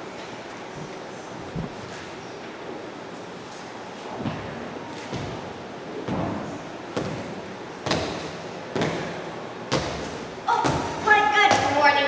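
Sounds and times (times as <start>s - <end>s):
footsteps on wooden stage: 0.7s - 2.2s, 4.1s - 5.5s.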